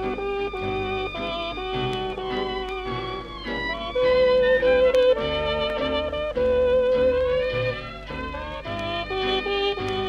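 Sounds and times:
dance orchestra on old record: 0.0s - 10.0s.

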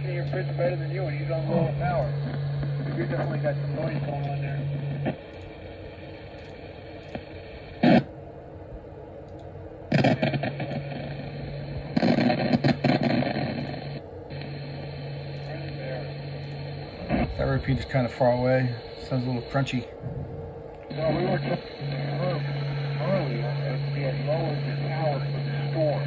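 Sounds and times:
garbled radio speech: 0.0s - 5.2s, 9.9s - 26.0s
loud static burst: 0.0s - 8.1s, 9.9s - 26.0s
radio static hiss: 0.0s - 8.2s, 9.8s - 26.0s
radio hum: 0.0s - 26.0s.

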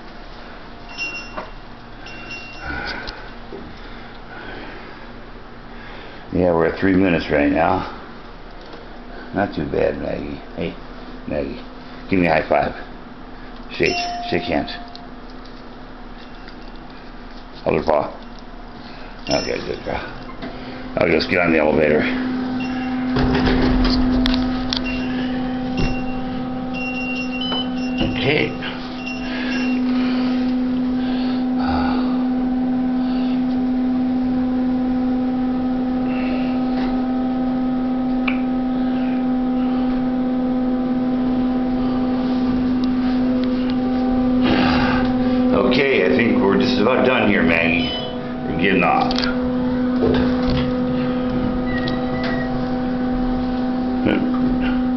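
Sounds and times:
low electrical hum: 0.0s - 54.9s
short high beeps: 47.6s - 48.3s.

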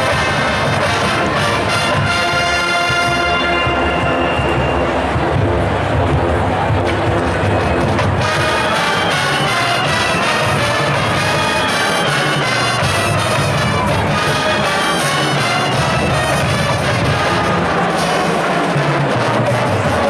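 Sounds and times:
marching band playing jazz: 0.0s - 20.0s
trumpets and trombones: 0.0s - 20.0s.

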